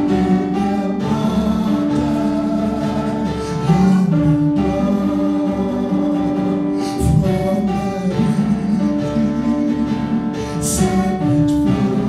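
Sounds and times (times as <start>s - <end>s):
instrumental accompaniment: 0.0s - 12.0s
man singing into a microphone: 0.0s - 12.0s.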